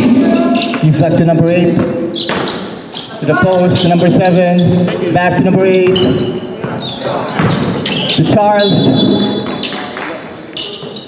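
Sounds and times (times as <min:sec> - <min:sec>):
people's voices: 0:00.0 - 0:02.2, 0:03.0 - 0:11.0
shoe squeaks on court: 0:01.8 - 0:11.0
basketball thuds: 0:07.4 - 0:07.8.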